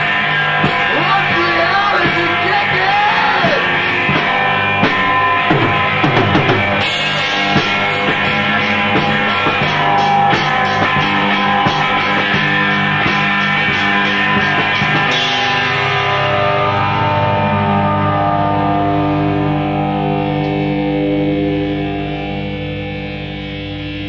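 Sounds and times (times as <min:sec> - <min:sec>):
rock band playing: 0:00.0 - 0:24.0
sustained guitar chords: 0:00.0 - 0:24.0.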